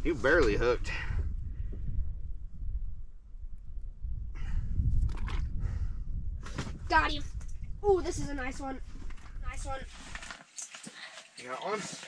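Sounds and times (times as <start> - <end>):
steady low rumble: 0.0 - 9.9.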